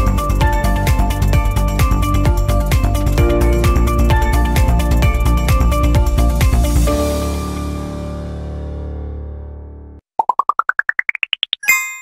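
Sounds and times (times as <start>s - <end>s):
short pops rising in pitch: 10.1s - 11.8s.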